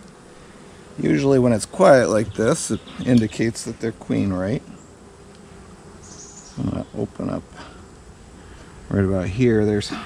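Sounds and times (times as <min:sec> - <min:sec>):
faint high hiss: 0:00.0 - 0:10.0
honey bees humming: 0:00.0 - 0:10.0.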